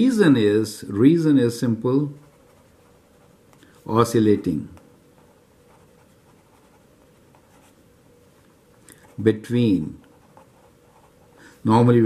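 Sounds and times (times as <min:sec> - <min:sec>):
marker scratching on paper: 0:02.2 - 0:03.5, 0:05.2 - 0:07.8, 0:10.0 - 0:11.4.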